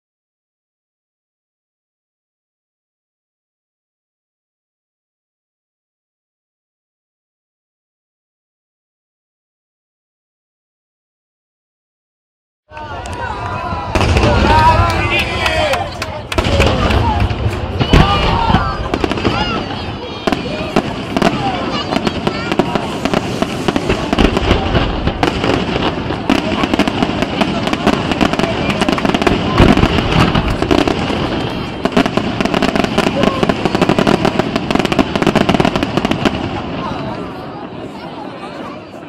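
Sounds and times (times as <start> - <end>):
firework crackling: 12.9 - 38.0.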